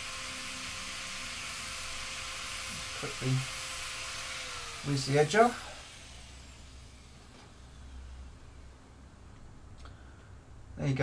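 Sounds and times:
angle grinder coasting down: 0.0 - 8.2.

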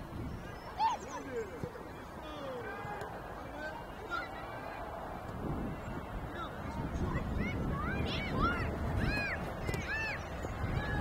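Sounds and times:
steady low background noise: 0.0 - 11.0.

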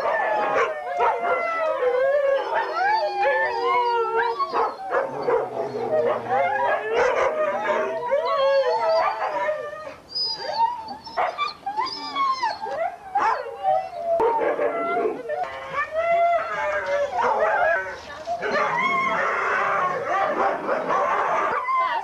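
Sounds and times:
dogs howling and yipping: 0.0 - 22.0.

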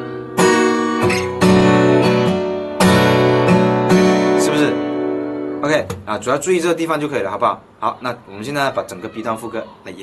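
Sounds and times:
acoustic guitar strumming: 0.0 - 6.3.

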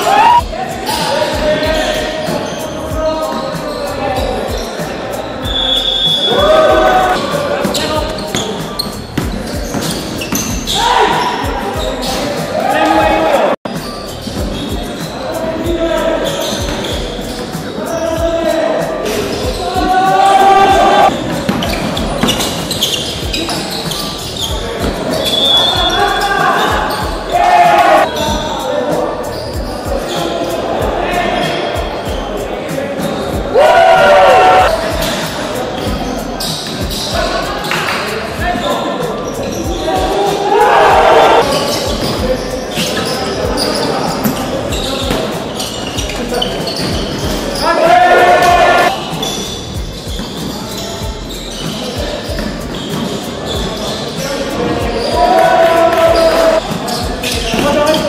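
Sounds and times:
loud shouts: 0.0 - 2.2, 5.4 - 8.2, 10.4 - 13.6, 18.0 - 21.1, 25.3 - 28.2, 33.3 - 35.0, 39.4 - 45.1, 47.4 - 49.2, 54.5 - 58.0
players' voices: 0.0 - 58.0.

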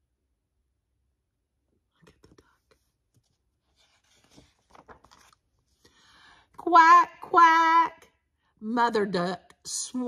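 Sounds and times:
paper page turning: 3.1 - 5.8.

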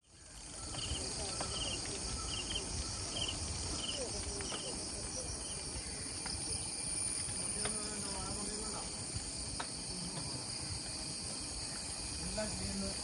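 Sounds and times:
high-pitched insect chorus: 0.0 - 13.0.

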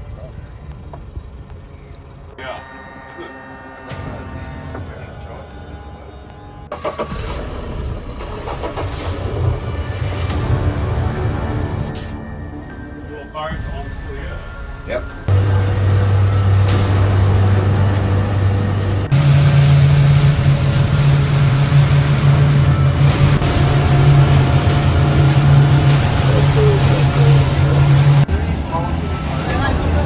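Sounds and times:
outboard engines droning: 0.0 - 30.0
hull rushing through water: 15.4 - 30.0.

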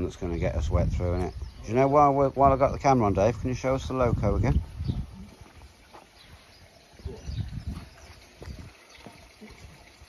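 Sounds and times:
faint footsteps on stone: 4.4 - 10.0.

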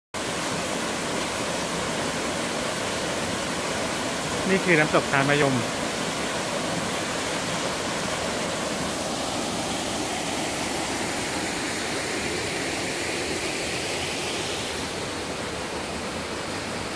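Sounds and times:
waterfall rushing into a pool: 0.2 - 16.9.

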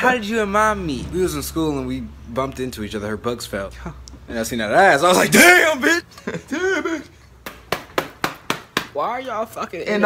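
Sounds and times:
sharp slaps or knocks: 7.4 - 9.0.

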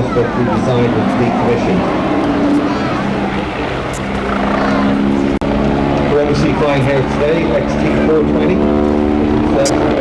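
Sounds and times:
helicopter flying overhead: 0.0 - 10.0.

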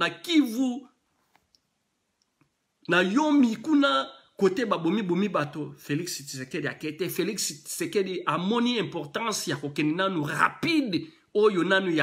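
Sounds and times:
man speaking: 0.0 - 1.0, 2.8 - 12.0.

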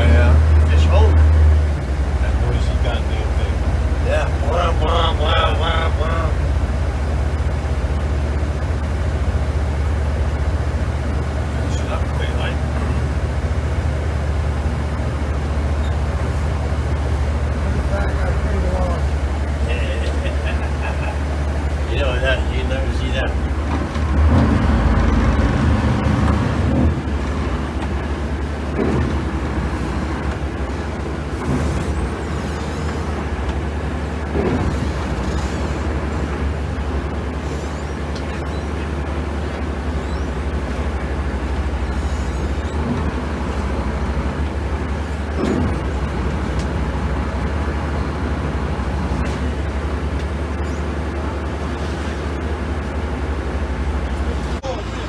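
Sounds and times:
diesel boat engine droning: 0.0 - 55.0.

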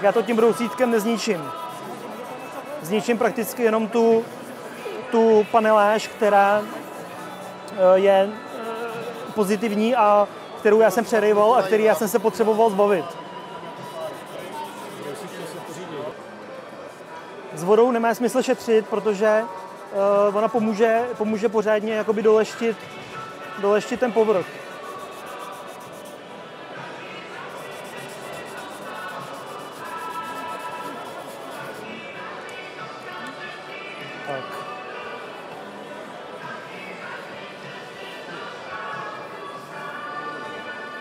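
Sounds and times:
background music: 0.0 - 41.0
faint chatter in a hall: 0.0 - 41.0
sanding sponge rubbing plastic: 0.5 - 3.2, 6.2 - 7.5, 8.4 - 9.9, 13.8 - 15.6, 18.8 - 26.2, 27.5 - 31.8.

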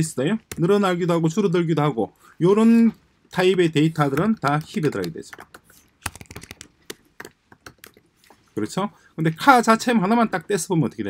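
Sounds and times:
computer keyboard typing: 4.0 - 8.1.

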